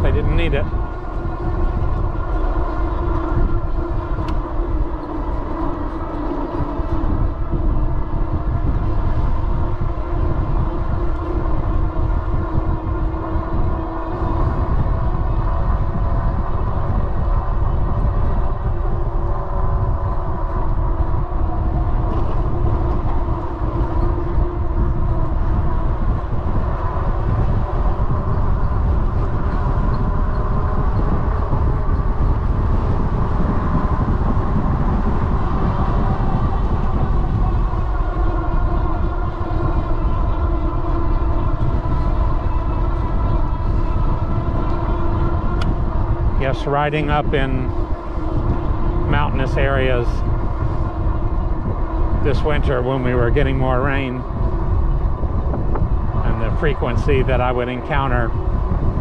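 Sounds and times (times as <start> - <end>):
electric bike motor whine: 0.0 - 59.0
wind rumble on microphone: 0.0 - 59.0.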